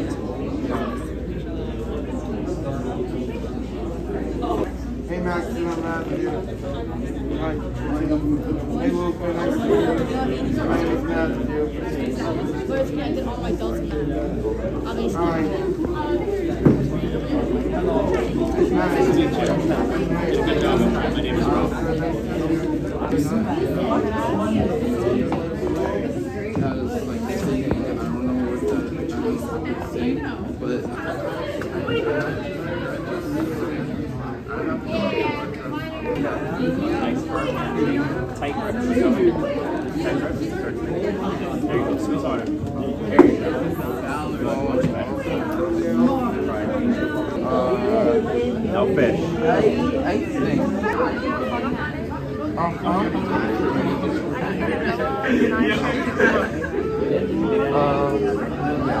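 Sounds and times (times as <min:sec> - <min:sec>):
crowd of teenagers chattering: 0:00.0 - 0:59.0
people talking at once: 0:00.0 - 0:59.0.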